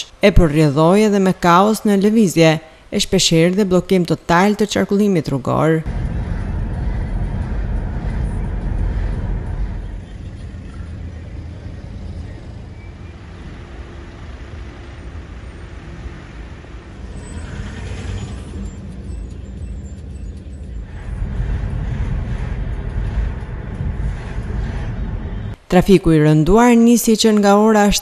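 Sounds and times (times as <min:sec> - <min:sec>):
traffic hiss: 0:05.9 - 0:19.0
traffic engines and tyres rumbling: 0:05.9 - 0:25.7.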